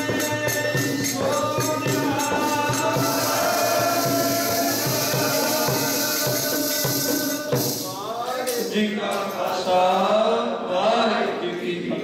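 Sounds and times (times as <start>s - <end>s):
steady rhythmic beat: 0.0s - 8.9s.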